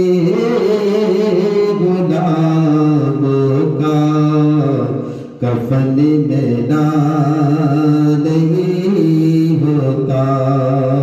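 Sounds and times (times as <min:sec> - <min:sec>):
person chanting devotional recitation: 0:00.0 - 0:11.0.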